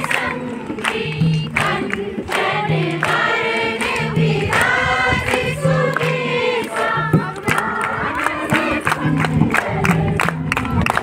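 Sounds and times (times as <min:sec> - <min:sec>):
group singing in chorus: 0:00.0 - 0:11.0
people clapping along: 0:00.0 - 0:11.0.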